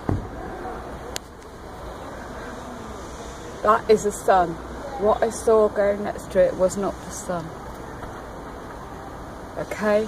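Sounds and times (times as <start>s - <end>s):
low rumble and hiss: 0.0s - 10.0s.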